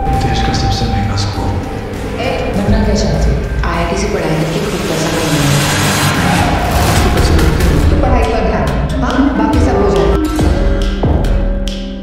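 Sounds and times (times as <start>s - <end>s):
low held tone: 0.0s - 7.5s
rushing whoosh: 1.4s - 8.9s.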